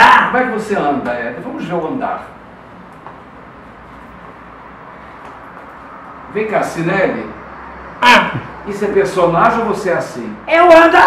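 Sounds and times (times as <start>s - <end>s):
low background rumble and hiss: 0.0s - 7.5s.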